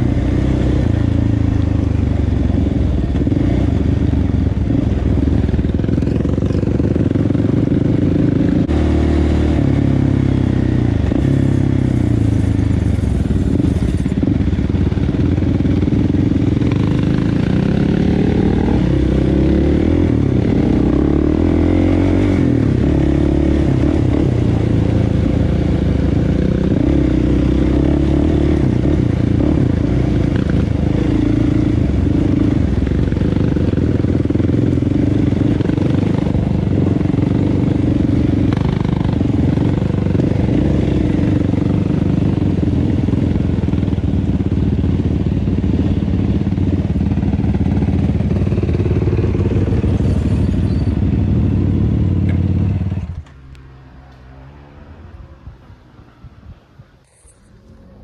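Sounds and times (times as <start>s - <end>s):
atv engine running: 0.0s - 53.3s.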